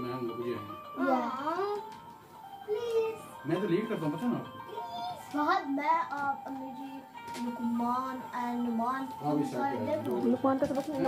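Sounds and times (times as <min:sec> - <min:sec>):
child singing: 0:04.7 - 0:10.1.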